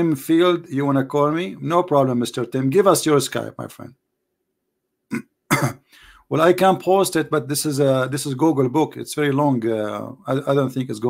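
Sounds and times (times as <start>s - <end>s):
man coughing: 5.1s - 5.9s.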